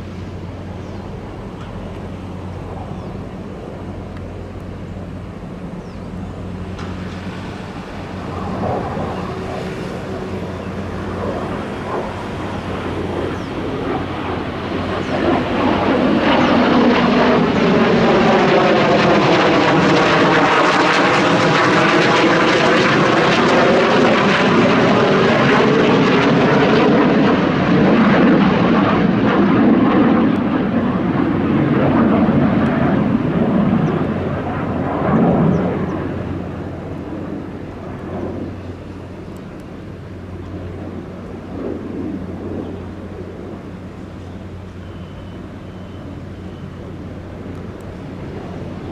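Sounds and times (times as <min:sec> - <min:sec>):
jet engine passing overhead: 0:00.0 - 0:48.9.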